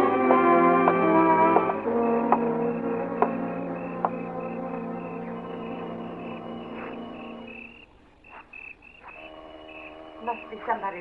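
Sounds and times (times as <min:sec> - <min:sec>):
low held tone: 0:00.0 - 0:07.8
bridge music: 0:00.0 - 0:07.9, 0:09.1 - 0:11.0
crickets chirping: 0:00.0 - 0:11.0.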